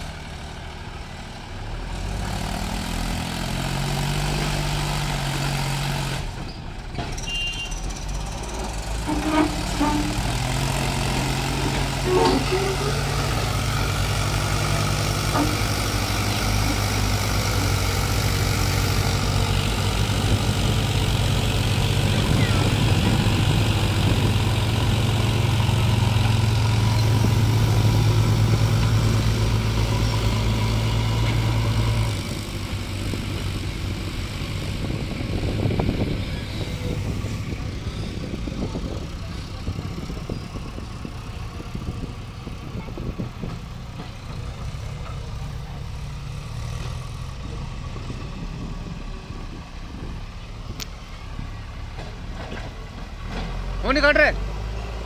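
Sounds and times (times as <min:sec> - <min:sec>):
backhoe loader working: 0:00.0 - 0:55.0
tractor diesel engine under load: 0:00.0 - 0:55.0.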